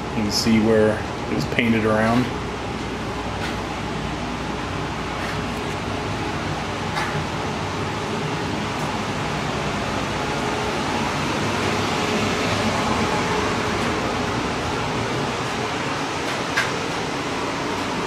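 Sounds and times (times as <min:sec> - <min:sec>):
blower fan running: 0:00.0 - 0:18.0.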